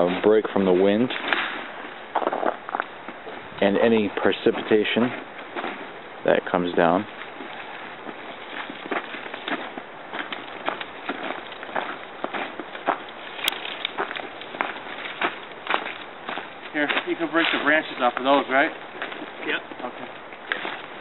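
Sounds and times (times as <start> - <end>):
footsteps crunching in snow: 0.0 - 21.0
dry branches snapping: 1.0 - 3.0, 7.1 - 21.0.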